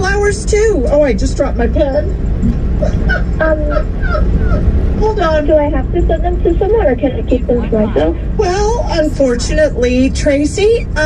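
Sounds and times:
woman laughing: 2.8 - 4.7.

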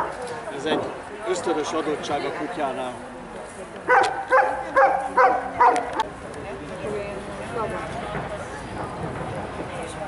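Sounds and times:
dog barking: 3.9 - 6.0.

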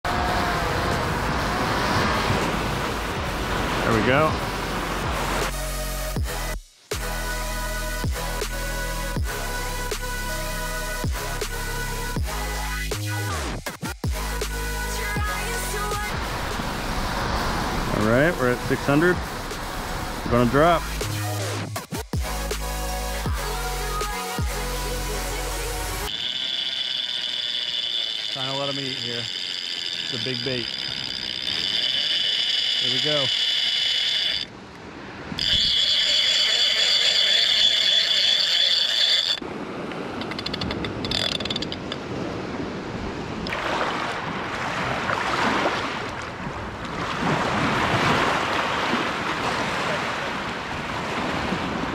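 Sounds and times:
surf breaking on beach: 0.1 - 5.6, 16.2 - 20.8, 32.8 - 33.3, 42.0 - 51.9
fishing reel clicker whirring: 26.0 - 34.5, 35.4 - 39.4, 40.2 - 42.0.

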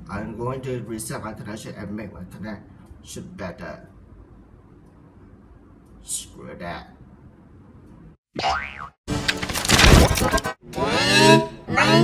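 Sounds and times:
cartoon boing sound effect: 8.4 - 9.0.

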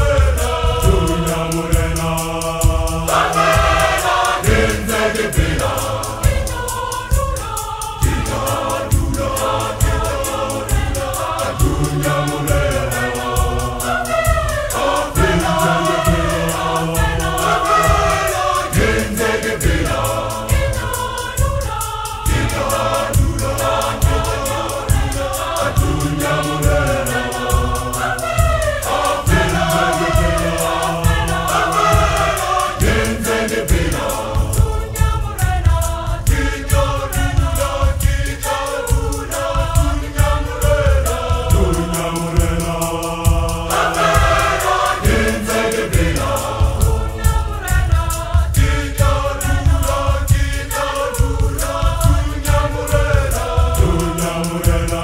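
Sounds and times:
choir singing a hymn: 0.0 - 55.0
steady low beat: 0.0 - 55.0.

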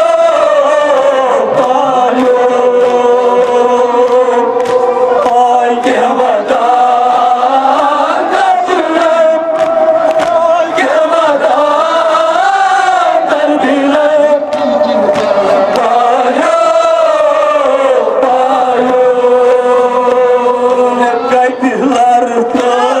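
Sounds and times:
men chanting a lament over loudspeakers: 0.0 - 23.0.

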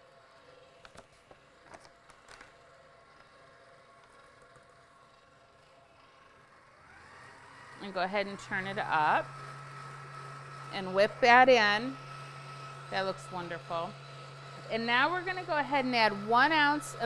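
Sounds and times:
stand mixer motor hum: 2.9 - 17.0.

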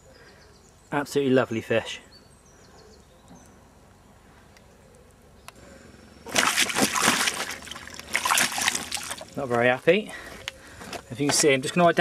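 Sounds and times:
water splashing and sloshing: 6.3 - 9.6.

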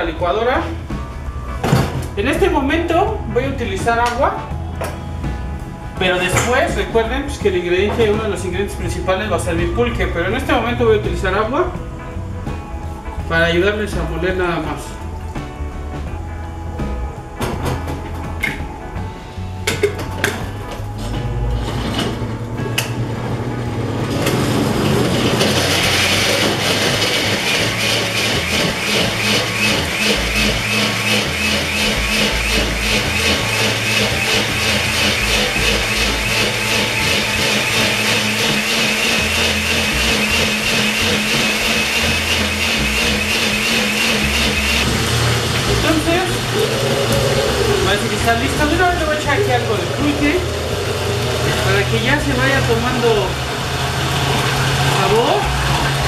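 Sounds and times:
countertop blender grinding: 21.5 - 56.0.

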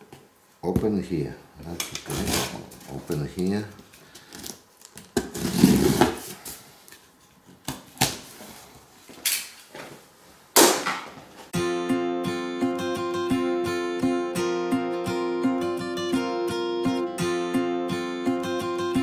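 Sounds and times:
blade ripping packing tape: 4.3 - 6.3
guitar music: 11.6 - 19.0.

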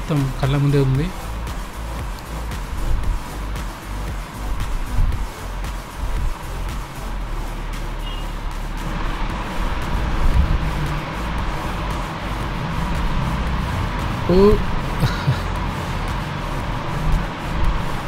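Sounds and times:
background music: 0.0 - 18.0
motorcycle engine running: 0.0 - 18.0.

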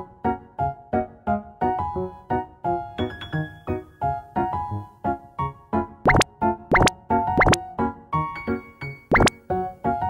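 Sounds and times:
bouncy keyboard music: 6.1 - 7.6, 9.1 - 9.4
rising pop sound effects: 6.1 - 7.6, 9.1 - 9.4.

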